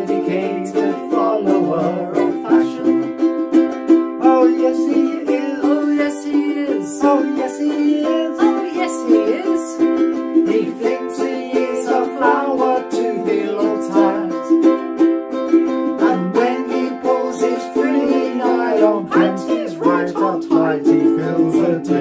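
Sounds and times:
man and woman singing: 0:00.0 - 0:03.3, 0:04.2 - 0:14.7, 0:16.0 - 0:22.0
ukuleles strummed: 0:00.0 - 0:22.0.

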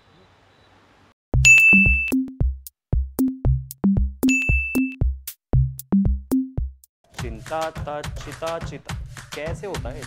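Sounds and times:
held high ding: 0:01.4 - 0:02.2, 0:04.3 - 0:05.0
electronic music: 0:01.4 - 0:06.8.

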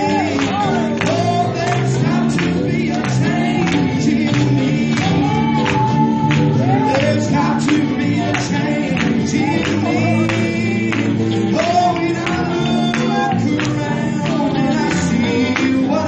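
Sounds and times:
gospel singing over a band: 0:00.0 - 0:16.0.

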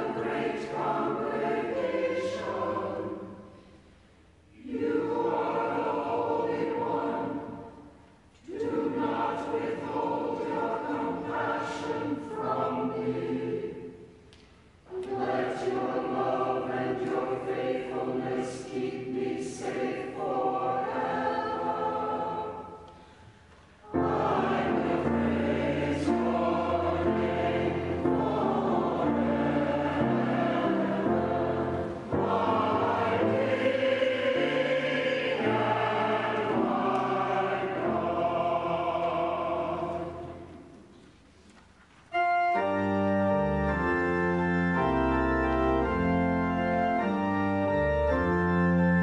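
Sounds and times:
choir singing: 0:00.0 - 0:03.9, 0:04.5 - 0:14.2, 0:14.8 - 0:41.1.

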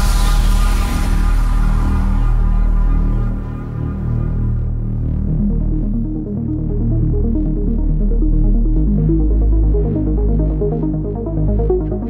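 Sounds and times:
deep bass: 0:00.0 - 0:12.0
techno music: 0:00.0 - 0:12.0.

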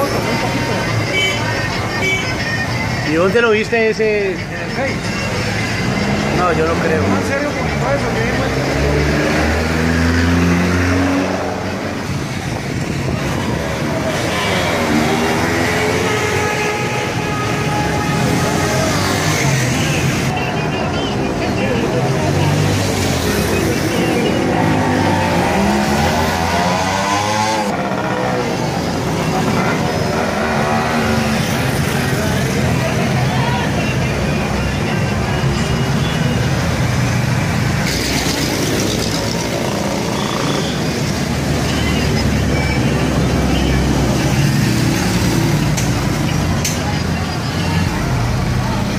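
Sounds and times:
crowd chatter: 0:00.0 - 0:48.9
motorcycle engines revving: 0:04.8 - 0:48.9.

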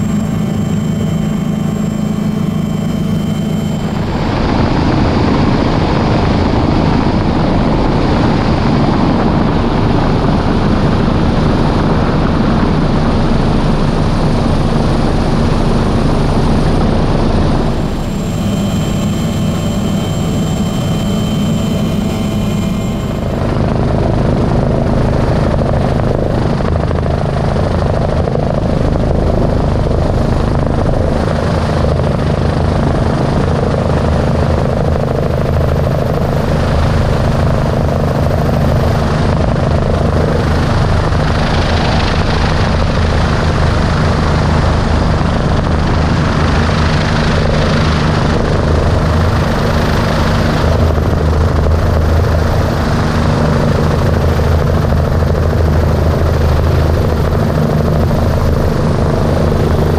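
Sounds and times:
helicopter rotor and engines droning: 0:00.0 - 0:59.9.

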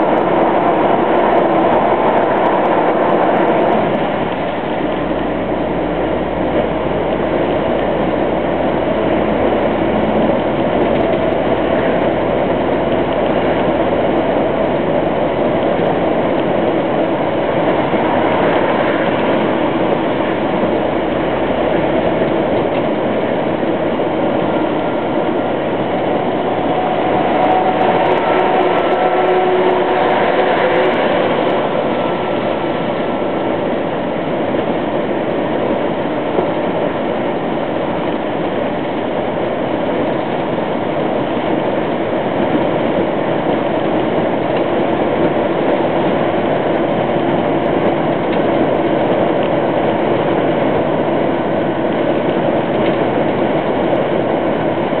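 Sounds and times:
truck engine and road noise: 0:00.0 - 0:55.0.

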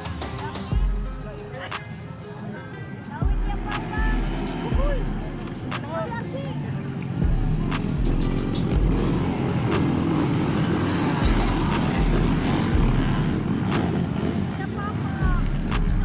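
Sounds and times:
background music: 0:00.0 - 0:16.0
dirt bike engines roaring: 0:00.0 - 0:16.0.

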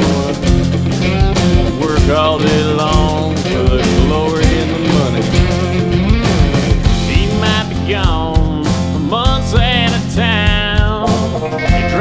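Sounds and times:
lead guitar bending sliding notes: 0:00.0 - 0:09.9, 0:10.6 - 0:12.0
drums steady beat: 0:00.0 - 0:12.0
guitars: 0:00.0 - 0:12.0.

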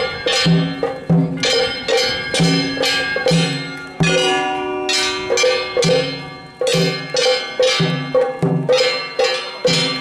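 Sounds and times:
brass hand gongs clanging: 0:00.0 - 0:10.0.

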